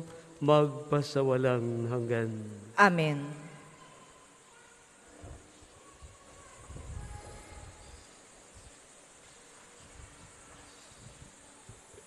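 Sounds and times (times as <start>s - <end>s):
steady soft hiss: 0.0s - 12.0s.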